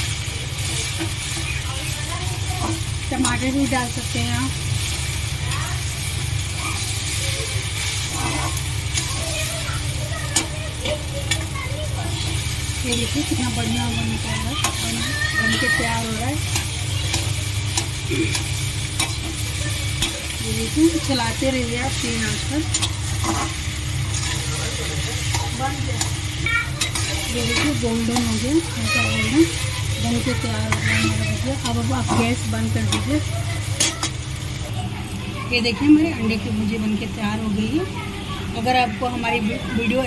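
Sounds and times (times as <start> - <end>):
eggs sizzling: 0.0 - 40.0
spatula scraping a pan: 0.7 - 34.2
spatula clicking against pan: 16.4 - 20.3.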